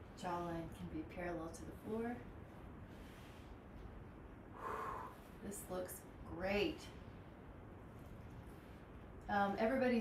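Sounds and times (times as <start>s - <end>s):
woman breathing through nose: 4.6s - 5.3s.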